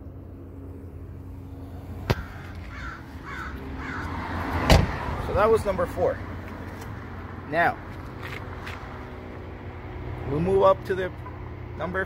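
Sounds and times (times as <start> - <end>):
faint constant hum: 0.0 - 4.2
low vehicle rumble: 0.0 - 12.0.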